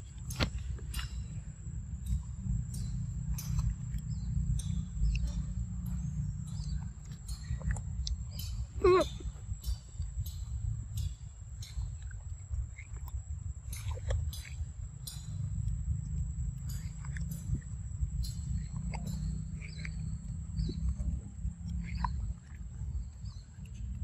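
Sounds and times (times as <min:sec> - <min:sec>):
steady low rumble: 0:00.0 - 0:24.0
wet mouth clicks and smacks: 0:02.0 - 0:22.7.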